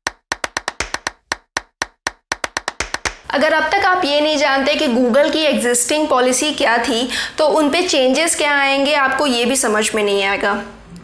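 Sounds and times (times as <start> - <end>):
rapid percussive clap hits: 0.0 - 3.3.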